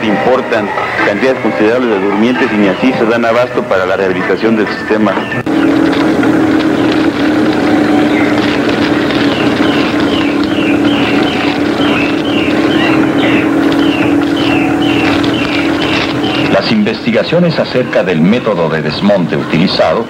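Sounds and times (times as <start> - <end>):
bulldozer engine drone: 4.6 - 18.6.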